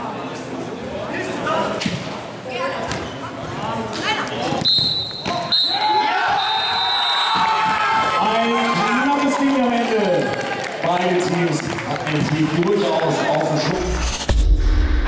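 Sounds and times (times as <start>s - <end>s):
shrill whistle: 4.6s - 7.5s
crowd shouting and cheering: 5.1s - 15.0s.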